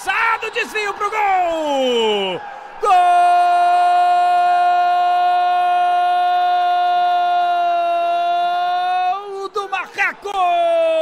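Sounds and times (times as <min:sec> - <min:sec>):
commentator shouting goal: 0:00.0 - 0:11.0.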